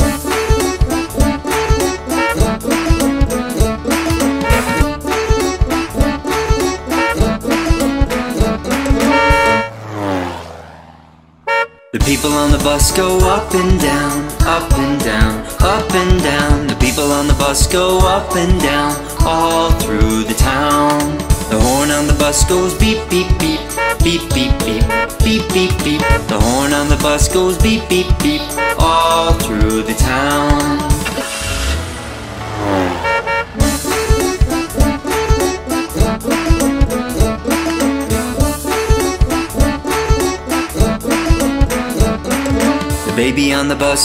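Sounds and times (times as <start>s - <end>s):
cartoon music: 0.0s - 9.8s, 33.0s - 44.0s
sliding horn honk effect: 0.0s - 13.7s, 23.5s - 27.0s, 28.3s - 43.4s
held low note: 4.4s - 4.9s
sliding tone: 8.7s - 11.9s
whooshing vehicle sound effect: 8.7s - 11.9s, 30.6s - 35.2s.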